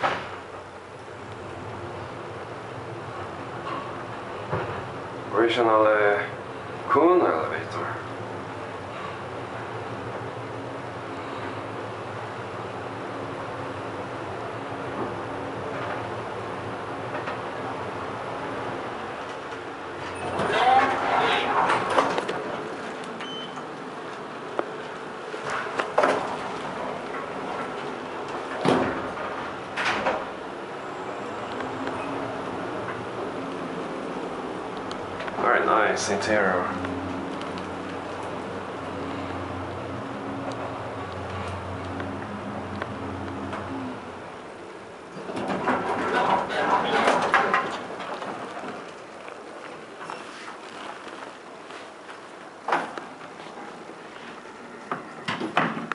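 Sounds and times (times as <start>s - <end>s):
elevator hum: 0.0s - 55.9s.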